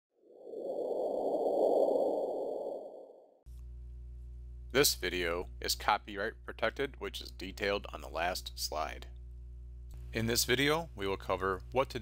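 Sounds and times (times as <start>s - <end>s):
steady low hum: 3.5s - 12.0s.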